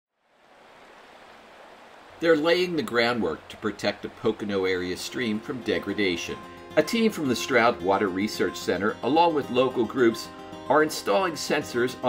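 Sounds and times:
stream rushing over stones: 0.2s - 12.0s.

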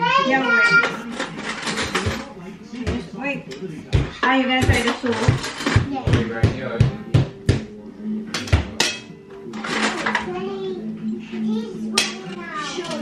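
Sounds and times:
utensils and dishes clinking: 0.1s - 6.4s, 8.3s - 13.0s.

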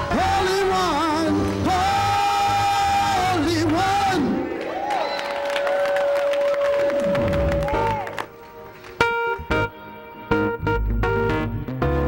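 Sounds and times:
congregation clapping and cheering: 0.0s - 9.1s
held keyboard note: 9.0s - 12.0s.

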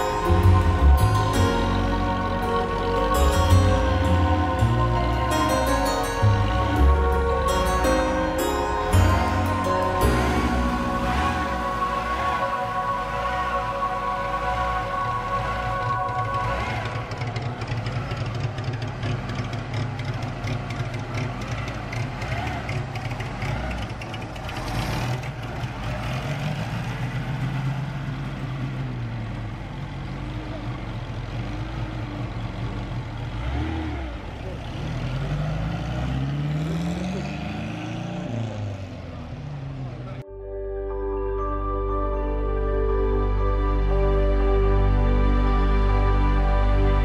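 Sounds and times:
music: 0.0s - 17.5s, 40.2s - 47.0s
engine revving: 0.0s - 30.3s, 31.2s - 40.2s
car engines pulling away: 0.0s - 40.3s.

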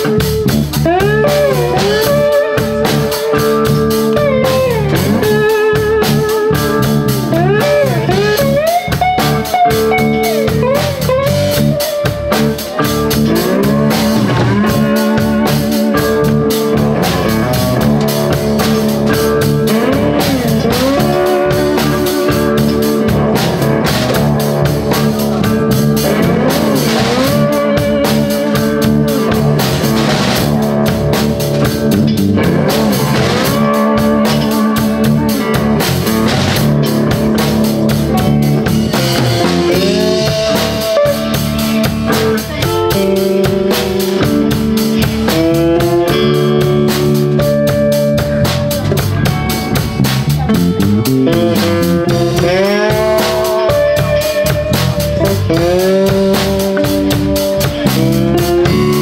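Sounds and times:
electric blues band playing: 0.0s - 59.0s
lead guitar bending notes: 0.0s - 59.0s.

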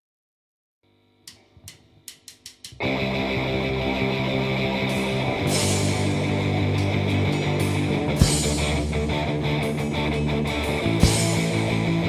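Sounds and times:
punk rock band with electric guitars: 2.8s - 12.0s
cymbal strikes: 4.9s - 11.8s.

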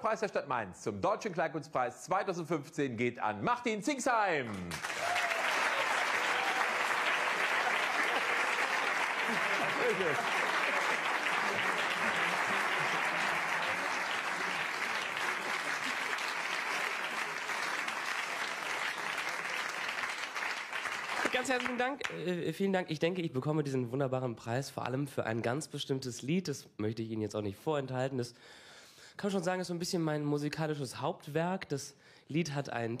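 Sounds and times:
large audience applauding: 4.5s - 22.2s.

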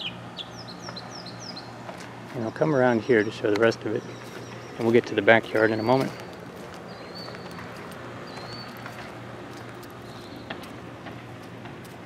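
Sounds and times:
steady low hum: 0.0s - 12.0s
footsteps on grass and pavement: 1.7s - 12.0s
faint high bird chirps: 8.3s - 9.0s.

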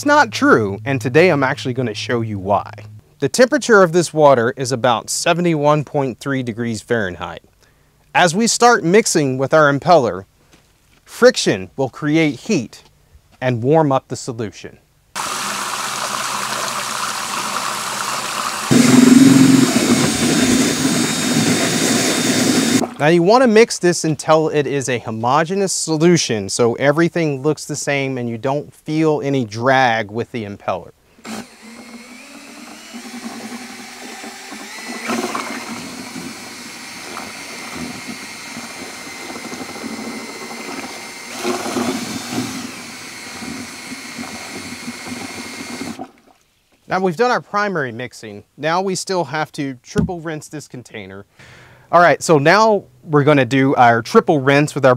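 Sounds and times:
liquid pouring into water: 15.2s - 18.7s
liquid churning: 15.2s - 18.8s, 32.1s - 46.2s
drill motor whine: 15.2s - 22.9s, 31.2s - 46.0s.

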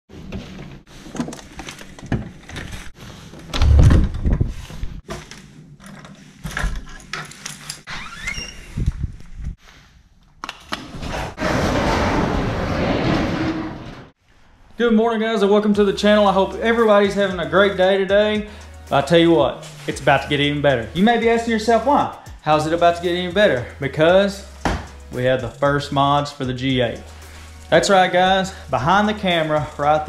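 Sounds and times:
door squeak: 7.9s - 8.9s
heavy thump: 24.6s - 25.0s.

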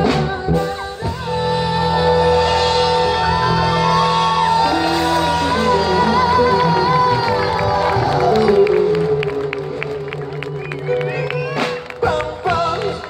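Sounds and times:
band with drums and keyboard: 0.0s - 13.0s
wavering lead line: 3.1s - 12.0s
people clapping: 4.3s - 13.0s.

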